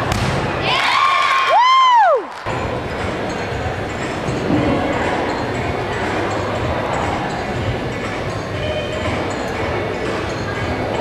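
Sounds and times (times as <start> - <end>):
crowd cheering: 0.6 - 2.5
loud high whoo: 0.7 - 2.3.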